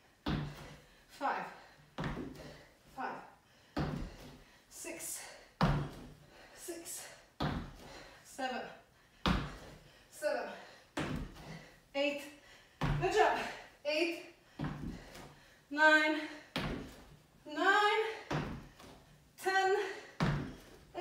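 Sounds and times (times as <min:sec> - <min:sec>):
sneakers thudding on tile floor: 0:00.2 - 0:00.8, 0:02.0 - 0:02.6, 0:03.8 - 0:04.4, 0:05.6 - 0:06.2, 0:07.4 - 0:08.1, 0:09.2 - 0:09.7, 0:11.0 - 0:11.7, 0:12.8 - 0:13.6, 0:14.5 - 0:15.5, 0:16.5 - 0:17.2, 0:18.0 - 0:19.1, 0:19.8 - 0:20.8.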